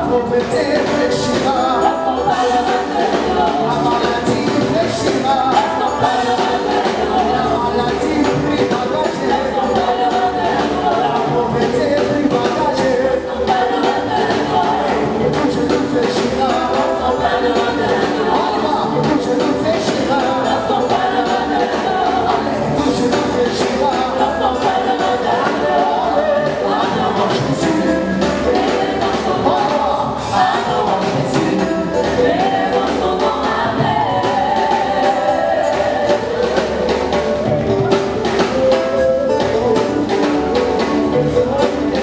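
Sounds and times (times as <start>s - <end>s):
drums steady beat: 0.0s - 42.0s
gospel choir singing: 0.0s - 42.0s
live band: 0.0s - 42.0s.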